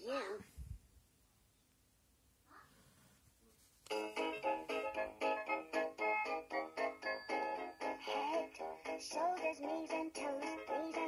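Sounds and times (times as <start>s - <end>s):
toy recorded voice singing: 8.0s - 11.0s.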